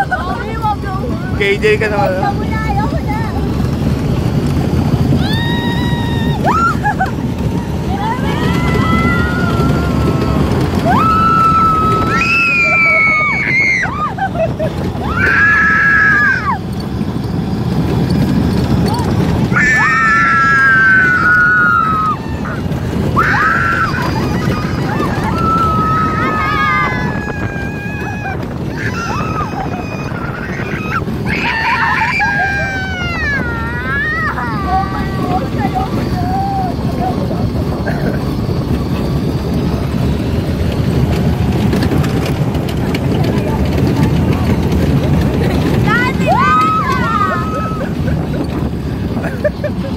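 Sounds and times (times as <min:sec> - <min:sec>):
rattles: 0:00.0 - 0:49.9
wind rumble on microphone: 0:00.0 - 0:49.9
people screaming on a ride: 0:02.6 - 0:49.9.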